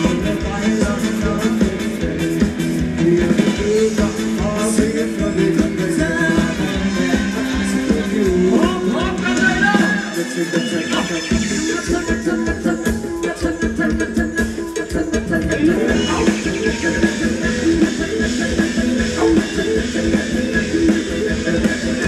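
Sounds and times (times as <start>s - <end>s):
live band dance music: 0.0s - 22.0s.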